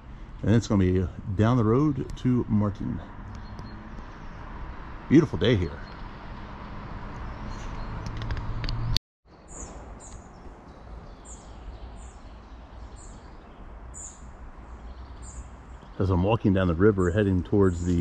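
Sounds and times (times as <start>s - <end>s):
outdoor background noise: 0.0s - 18.0s
small bird chirping: 3.2s - 4.5s, 7.2s - 16.1s.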